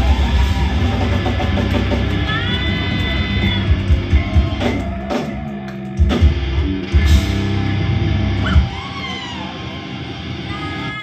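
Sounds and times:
high-pitched whoops: 0:00.0 - 0:06.0, 0:08.3 - 0:11.0.

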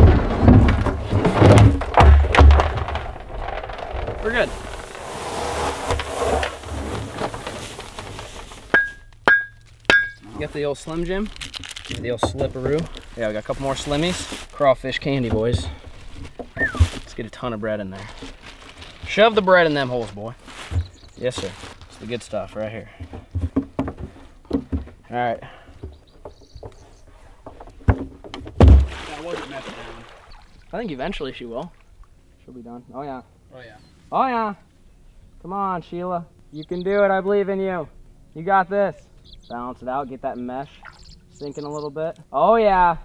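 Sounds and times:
plastic barrel thuds and knocks: 0:00.0 - 0:10.2, 0:11.8 - 0:14.3, 0:15.0 - 0:17.2, 0:22.8 - 0:25.1, 0:27.4 - 0:29.6.

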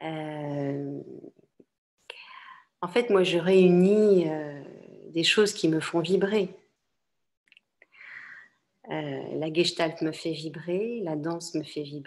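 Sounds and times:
woman speaking: 0:00.0 - 0:01.3, 0:02.8 - 0:06.7, 0:08.9 - 0:12.0
short breath: 0:02.1 - 0:02.8, 0:07.9 - 0:08.6.

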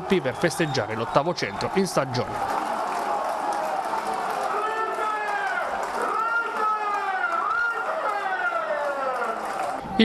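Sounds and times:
crowd shouting and chanting: 0:00.0 - 0:10.0.

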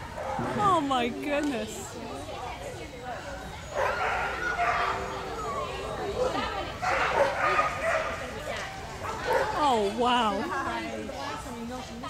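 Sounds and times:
dog barking: 0:03.7 - 0:05.0, 0:06.8 - 0:08.2.

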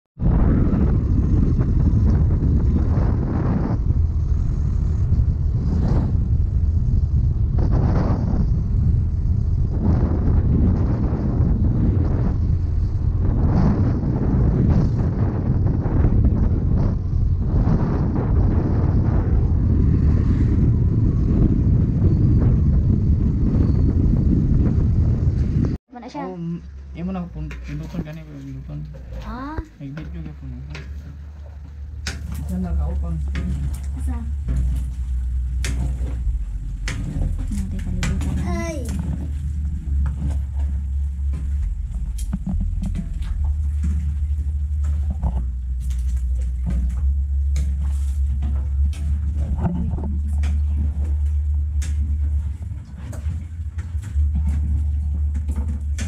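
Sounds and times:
wind buffeting microphone: 0:00.2 - 0:56.0.

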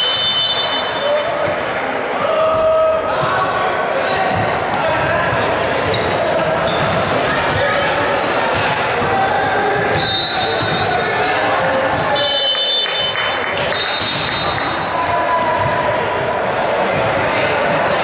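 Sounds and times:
overlapping voices echoing in a hall: 0:00.0 - 0:18.0.

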